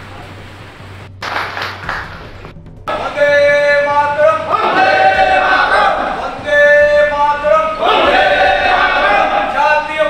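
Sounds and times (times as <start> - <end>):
low electrical hum: 0.0 - 10.0
clapping: 1.2 - 2.4
crowd noise: 2.9 - 10.0.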